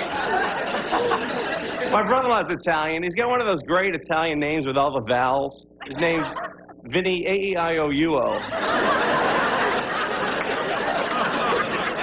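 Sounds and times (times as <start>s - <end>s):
audience laughing: 0.0s - 2.5s, 5.8s - 6.8s, 8.1s - 12.0s
man speaking: 1.9s - 8.4s.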